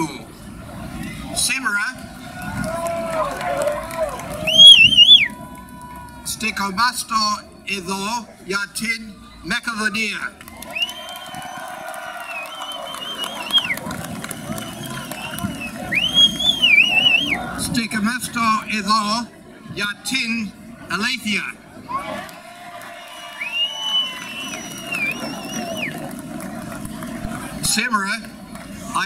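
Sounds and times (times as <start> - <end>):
crowd voices and shouts: 0.0 - 29.0
long high wavering whistle: 4.4 - 5.4, 12.2 - 17.4, 23.0 - 26.0.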